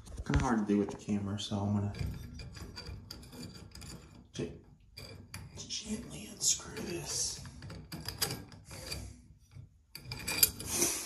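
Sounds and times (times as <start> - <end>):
metal scraping on glass: 1.8 - 11.0.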